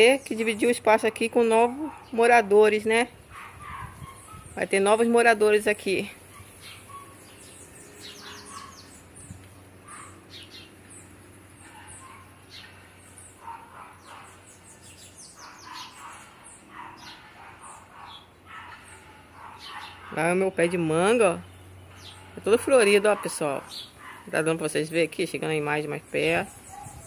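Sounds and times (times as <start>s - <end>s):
songbirds chirping: 0.0s - 27.0s
faint lower bird calls: 6.4s - 20.1s.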